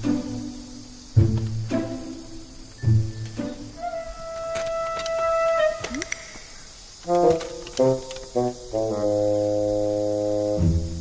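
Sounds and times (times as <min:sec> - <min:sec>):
background score chord: 0:07.0 - 0:11.0.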